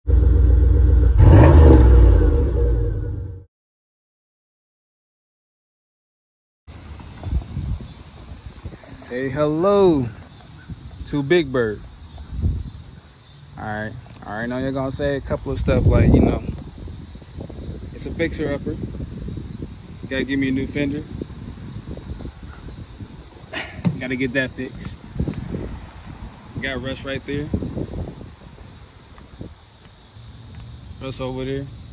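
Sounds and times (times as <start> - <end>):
car engine running and revving: 0.0 - 2.7
wind rumbling on microphone: 6.7 - 31.9.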